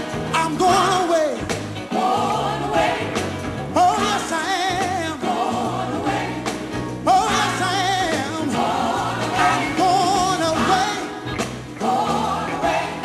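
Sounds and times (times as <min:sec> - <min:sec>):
band accompaniment: 0:00.0 - 0:13.0
person singing gospel: 0:00.3 - 0:13.0.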